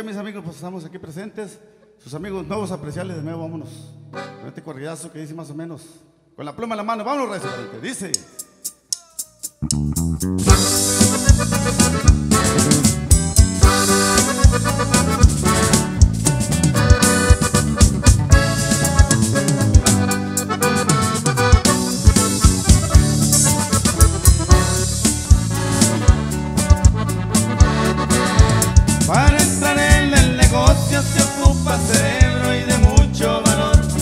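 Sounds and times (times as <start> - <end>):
accordion band playing dance beat: 4.1 - 4.6, 7.2 - 34.0.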